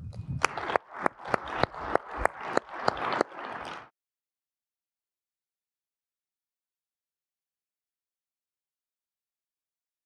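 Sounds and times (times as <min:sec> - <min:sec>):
nearby hands clapping: 0:00.1 - 0:03.9
audience applauding: 0:00.4 - 0:03.9.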